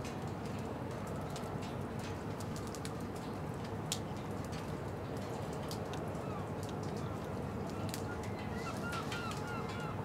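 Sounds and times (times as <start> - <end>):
raindrops ticking close by: 0.0 - 8.6
steady rain: 0.0 - 10.0.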